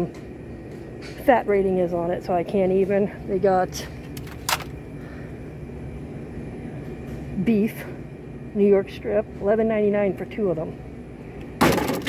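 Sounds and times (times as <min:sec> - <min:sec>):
refrigerated display cases humming: 0:00.0 - 0:12.0.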